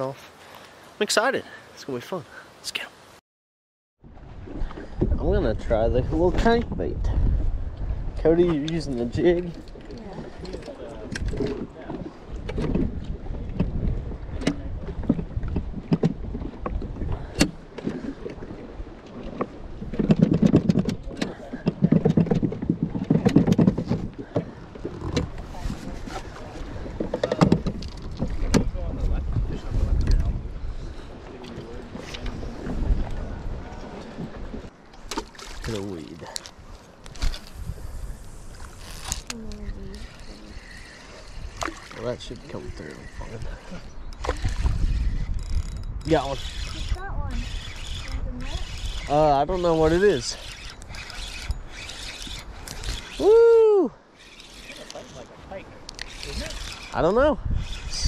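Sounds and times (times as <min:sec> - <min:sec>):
wind rumble on microphone: 0:04.0 - 0:34.8, 0:36.6 - 0:53.8, 0:55.2 - 0:58.0
water lapping against boat hull: 0:04.0 - 0:53.3, 0:54.0 - 0:58.0
knocks and clicks from boat gear: 0:07.7 - 0:29.0.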